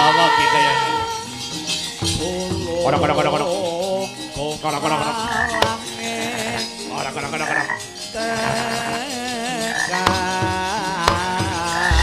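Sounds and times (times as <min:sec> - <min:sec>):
gamelan music: 0:00.0 - 0:12.0.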